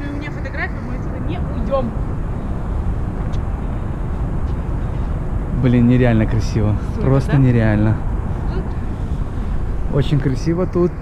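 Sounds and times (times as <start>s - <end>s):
low rumble of city ambience: 0.0s - 11.0s
wind buffeting microphone: 0.0s - 11.0s.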